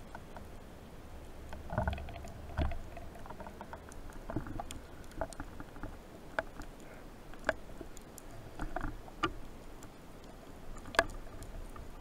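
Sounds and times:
faint underwater clicks: 0.0s - 12.0s.

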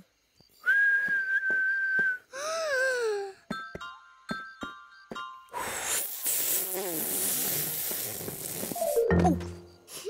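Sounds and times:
background music: 8.8s - 9.9s.

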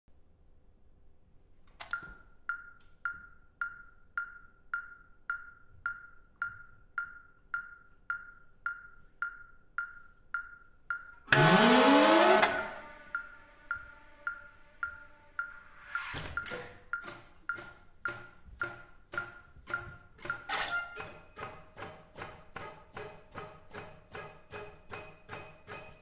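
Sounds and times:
dry percussive ticking: 2.5s - 11.4s, 13.1s - 26.0s
loud burst of falling pitches: 11.3s - 15.4s.

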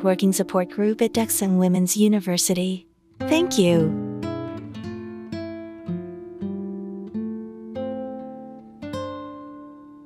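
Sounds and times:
acoustic guitar plucked chords: 2.4s - 10.0s.

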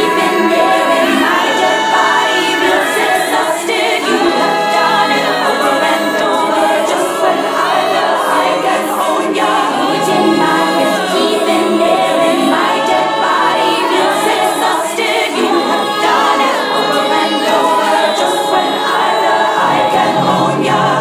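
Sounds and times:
women singing choir harmonies: 0.0s - 21.0s.

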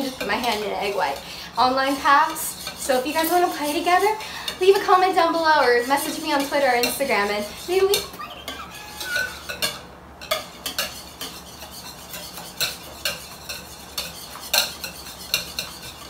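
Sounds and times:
whisk beating in a bowl: 0.0s - 5.1s, 10.3s - 16.0s.

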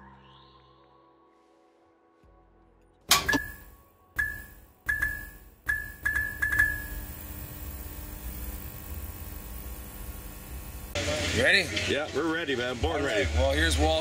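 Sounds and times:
electric zaps with high ding: 3.1s - 7.0s
steady electrical hum: 3.2s - 11.6s.

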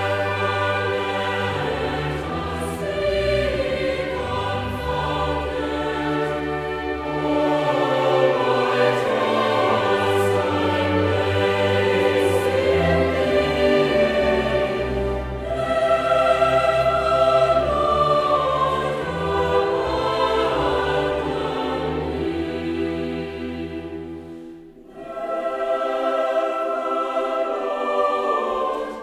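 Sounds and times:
choir singing held chords: 0.0s - 29.0s
orchestral accompaniment: 0.0s - 29.0s.

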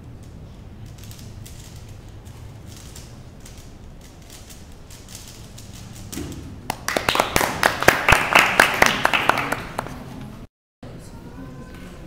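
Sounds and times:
audience clapping: 6.7s - 10.1s.

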